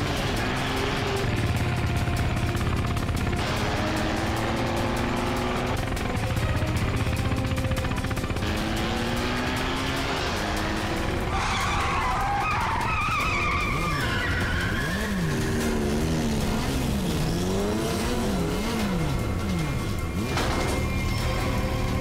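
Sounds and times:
dramatic background music: 0.0 - 22.0
motorcycles riding at speed: 0.0 - 22.0.

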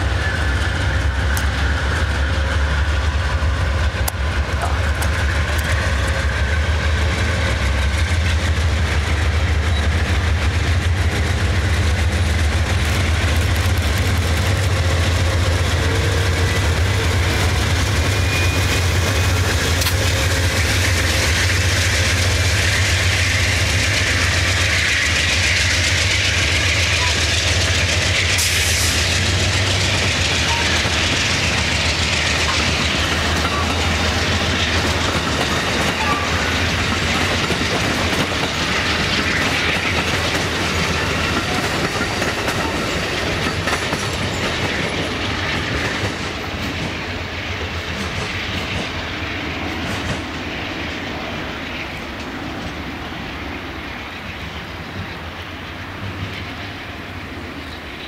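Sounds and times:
train wheels clacking on rail joints: 0.0 - 51.1.

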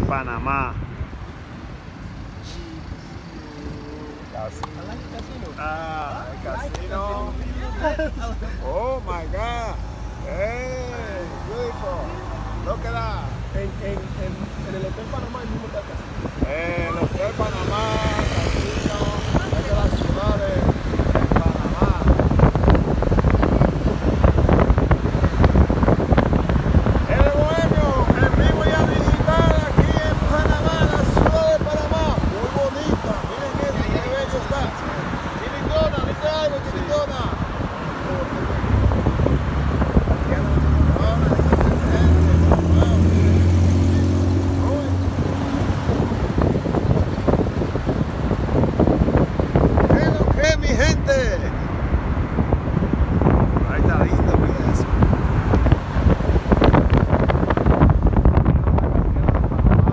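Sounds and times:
indistinct voices: 0.0 - 51.9
car road and engine rumble: 0.0 - 59.9
wind rushing over microphone: 0.0 - 59.9.

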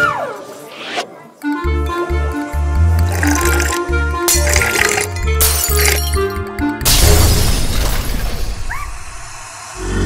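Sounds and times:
music: 1.4 - 10.0.

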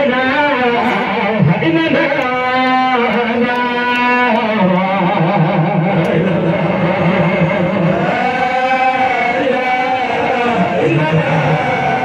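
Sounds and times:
man chanting over a loudspeaker: 0.0 - 12.0.

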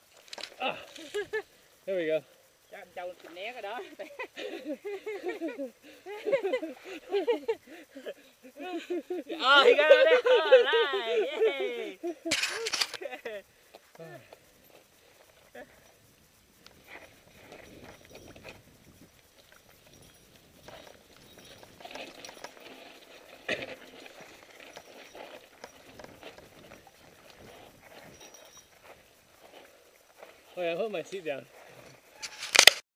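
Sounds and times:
bike tyres on dirt trail: 11.5 - 32.8
bike rattling over bumps: 16.9 - 29.6.

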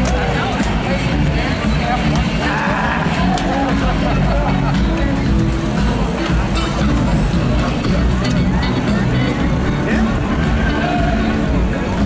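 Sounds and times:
bicycles rumbling in a crowd: 0.0 - 12.0.

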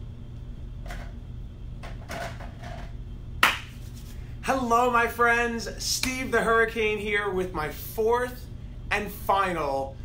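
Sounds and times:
steady low hum: 0.0 - 10.0
hand clap: 3.4 - 4.1.

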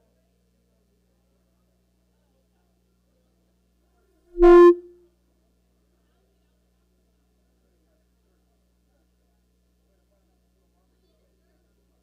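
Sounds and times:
loud horn-like tone: 4.4 - 4.9.

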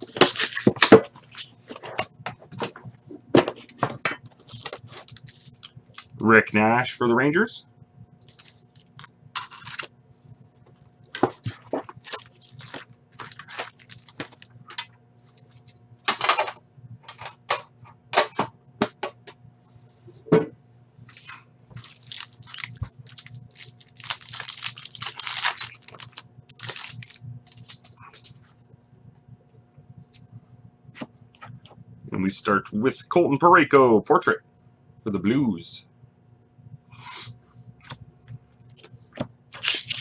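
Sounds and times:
foil wrappers crinkling and tearing: 0.0 - 1.9, 4.3 - 6.3, 8.2 - 9.9, 11.1 - 14.8, 21.2 - 28.4, 39.5 - 40.0.

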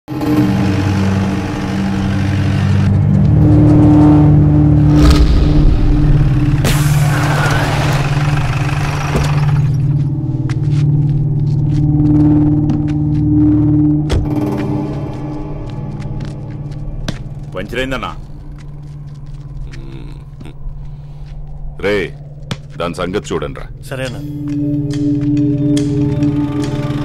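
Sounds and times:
jeep engine running: 0.1 - 18.0
low drone of film score: 0.1 - 27.0
tyres skidding on dirt road: 4.8 - 10.1.

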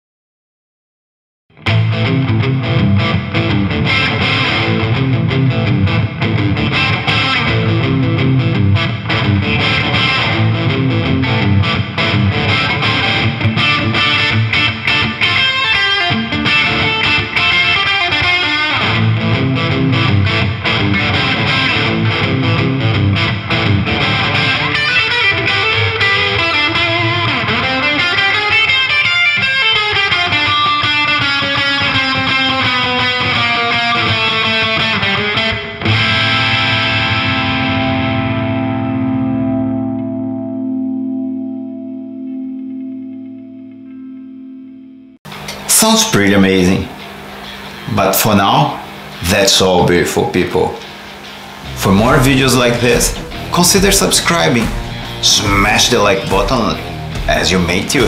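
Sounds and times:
distorted electric guitar: 1.5 - 58.0.

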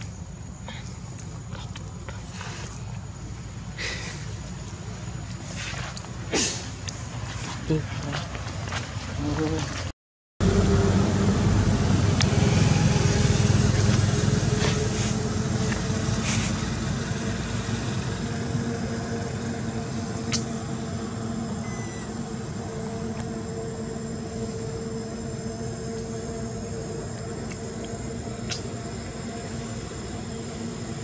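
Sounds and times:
vehicle engine running: 10.4 - 27.8.

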